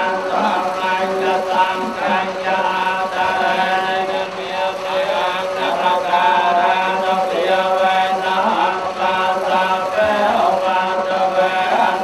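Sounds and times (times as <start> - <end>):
monks chanting through microphone: 0.0 - 12.0.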